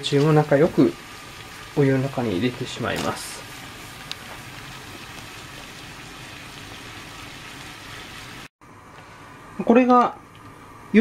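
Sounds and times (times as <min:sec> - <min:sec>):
water boiling in saucepan: 0:00.0 - 0:08.5.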